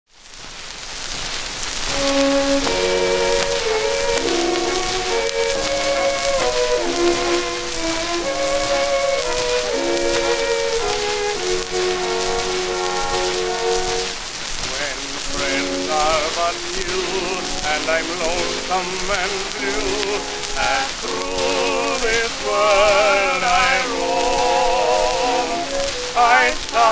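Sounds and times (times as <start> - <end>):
record surface hiss and crackle: 0.1 - 26.9
orchestra playing: 1.9 - 26.9.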